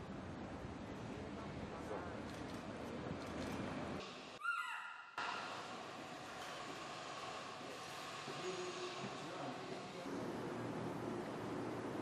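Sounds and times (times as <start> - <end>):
steady background noise: 0.0 - 4.4, 5.2 - 12.0
baby monkey high call: 4.4 - 5.1.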